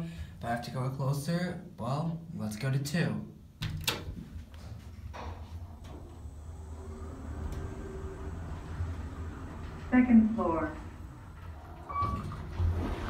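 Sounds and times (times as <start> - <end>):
elevator doors closing thump: 3.6 - 13.0
elevator car rumble: 4.5 - 13.0
elevator motor whine: 4.6 - 13.0.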